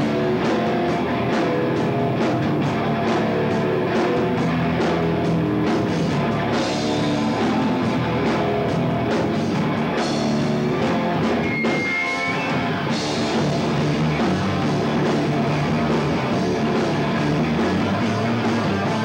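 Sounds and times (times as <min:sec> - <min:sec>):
distorted electric guitars: 0:00.0 - 0:19.0
drum kit beat: 0:00.0 - 0:19.0.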